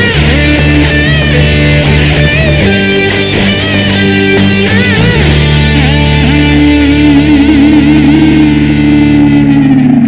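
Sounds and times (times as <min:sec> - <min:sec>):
distorted electric guitar note: 0:00.0 - 0:10.0.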